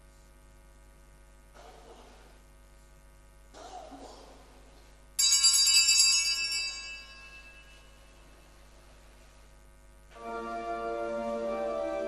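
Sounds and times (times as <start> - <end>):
small bells ringing: 5.2 - 8.3.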